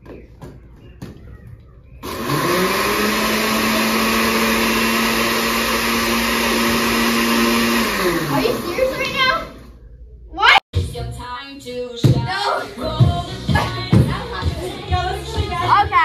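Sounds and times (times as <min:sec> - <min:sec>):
electric blender whirring: 0:02.0 - 0:09.8.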